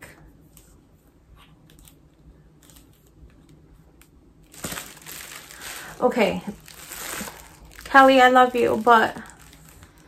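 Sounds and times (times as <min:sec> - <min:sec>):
packaging crinkling: 0:04.4 - 0:10.0.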